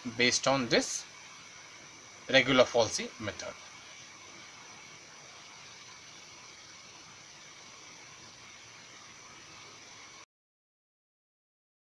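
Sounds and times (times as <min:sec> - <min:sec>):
faint recording hiss: 0:00.0 - 0:10.3
thin high steady tones: 0:00.0 - 0:10.3.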